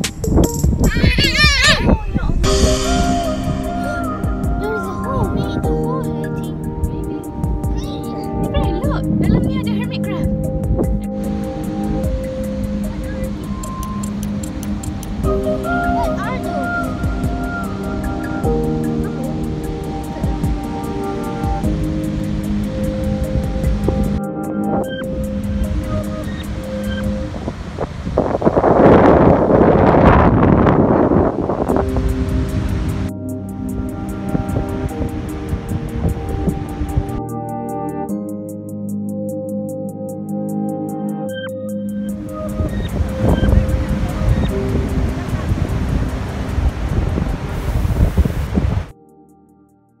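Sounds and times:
wind on microphone: 0.0 - 37.2, 42.0 - 48.9
background music: 0.0 - 50.0.

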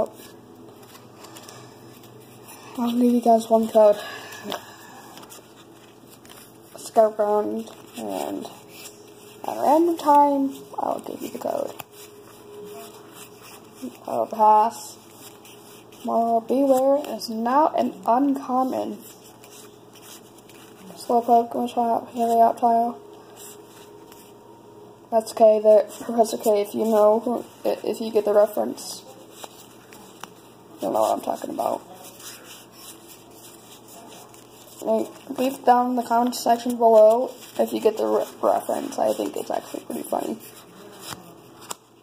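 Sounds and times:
cards rustling: 0.0 - 24.4, 25.8 - 42.0
low room hum: 0.0 - 42.0.

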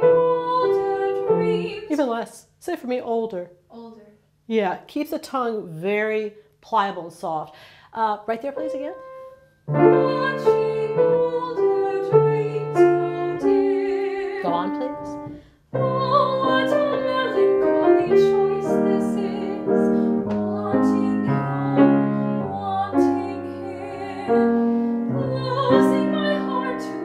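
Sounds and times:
grand piano accompaniment: 0.0 - 1.8, 8.6 - 27.0
woman singing classical: 0.0 - 2.1, 9.8 - 27.0.

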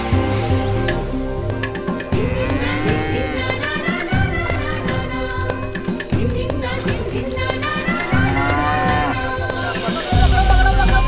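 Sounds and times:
background music: 0.0 - 11.0
cow mooing: 2.2 - 4.9, 7.9 - 11.0.

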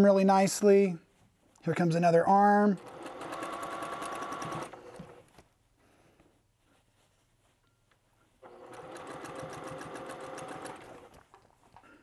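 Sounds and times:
sewing machine stitching: 2.6 - 5.3, 8.4 - 11.4.

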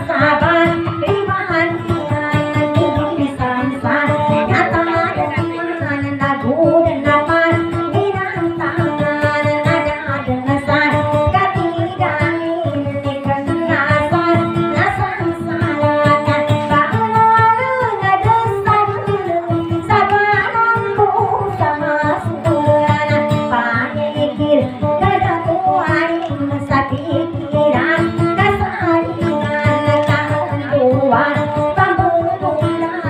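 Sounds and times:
strummed acoustic guitar: 0.0 - 33.0
woman singing into a microphone: 0.0 - 33.0.

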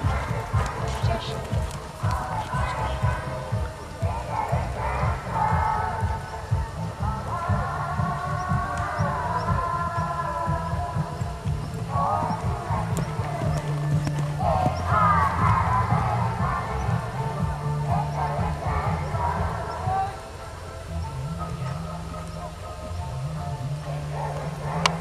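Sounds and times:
music melody: 0.0 - 25.0
uneven low rumble: 0.0 - 25.0.

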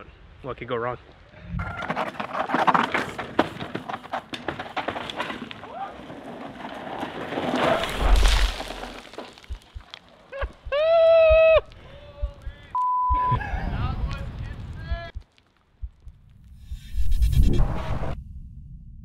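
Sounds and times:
bike crash: 1.6 - 9.9
mountain bike rattling over dirt: 1.6 - 10.6
censor bleep: 12.7 - 13.4.

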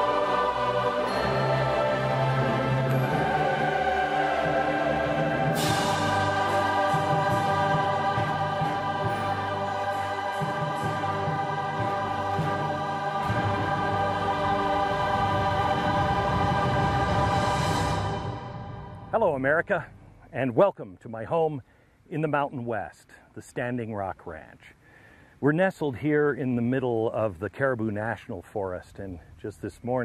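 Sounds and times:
choir singing with orchestra: 0.0 - 20.2.

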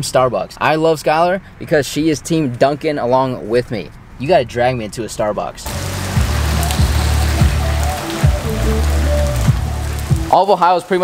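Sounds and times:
music with deep bass line: 5.7 - 10.4
rain on concrete: 5.7 - 11.0.

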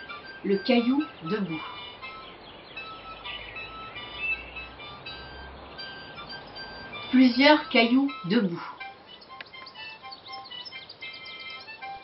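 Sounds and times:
small birds chirping: 0.0 - 12.0
soft background music: 0.0 - 12.0.

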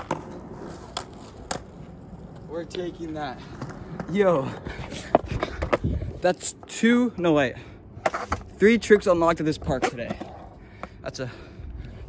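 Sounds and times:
skateboard clacking on concrete: 0.0 - 5.9, 8.0 - 11.0.

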